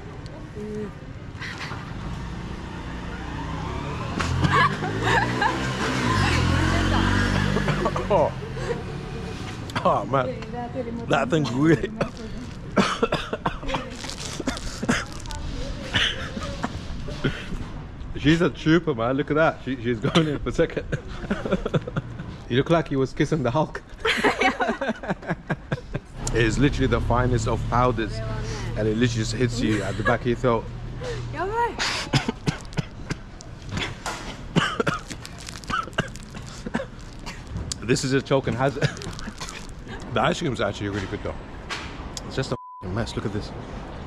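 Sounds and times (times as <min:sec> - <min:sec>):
man laughing: 0:04.4 - 0:05.8, 0:07.3 - 0:08.9, 0:15.9 - 0:17.5, 0:20.0 - 0:22.5, 0:24.1 - 0:26.1, 0:29.5 - 0:30.6, 0:38.7 - 0:39.4
man coughing: 0:07.3 - 0:08.4, 0:11.5 - 0:15.2, 0:20.0 - 0:21.1, 0:31.8 - 0:37.6, 0:38.7 - 0:39.6.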